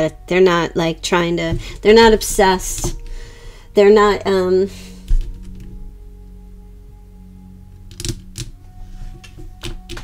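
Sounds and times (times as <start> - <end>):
soft background music: 0.0 - 10.0
cards clicking and tapping: 9.2 - 10.0.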